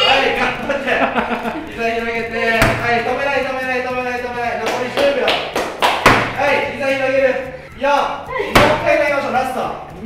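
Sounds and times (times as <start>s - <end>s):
medicine ball thudding on floor: 2.6s - 3.0s, 5.7s - 6.5s, 8.5s - 8.9s.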